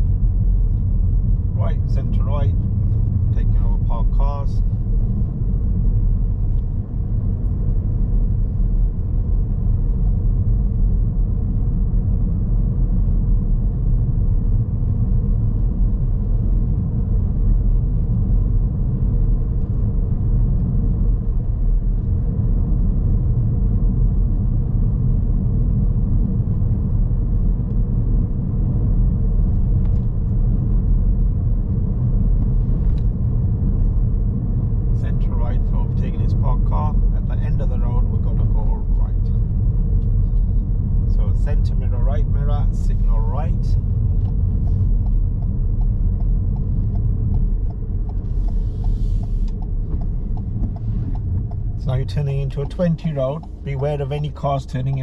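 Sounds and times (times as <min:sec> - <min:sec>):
car road and engine noise: 0:00.0 - 0:55.0.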